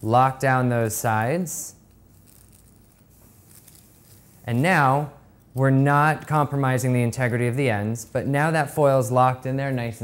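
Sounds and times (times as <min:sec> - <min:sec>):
low room hum: 0:00.0 - 0:10.0
foil being folded: 0:02.1 - 0:04.4.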